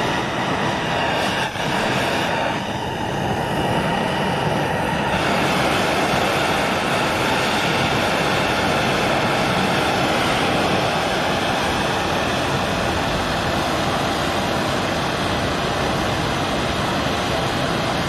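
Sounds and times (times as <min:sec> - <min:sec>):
propane torch rushing: 0:00.0 - 0:18.0.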